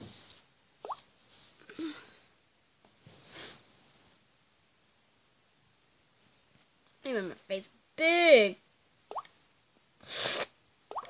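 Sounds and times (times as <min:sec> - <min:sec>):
stuffy nose sniff: 0:10.1 - 0:10.5.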